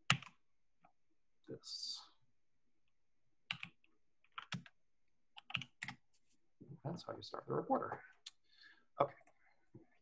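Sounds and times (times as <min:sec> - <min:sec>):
computer keyboard keystrokes: 0:03.5 - 0:04.8, 0:05.4 - 0:06.0.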